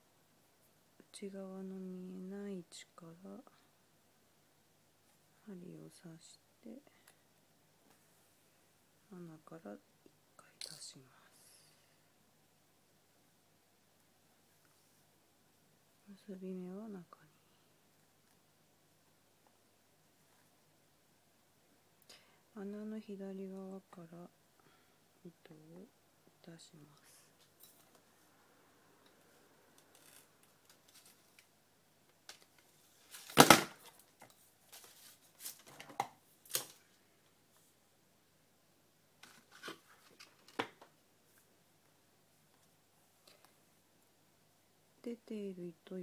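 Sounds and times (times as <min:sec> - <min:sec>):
person speaking softly: 0:01.0 - 0:03.8, 0:05.3 - 0:07.2, 0:09.1 - 0:12.1, 0:16.0 - 0:17.7, 0:22.1 - 0:24.4, 0:25.2 - 0:27.5, 0:45.0 - 0:46.0
faint cloth and thread rustles: 0:32.4 - 0:37.8.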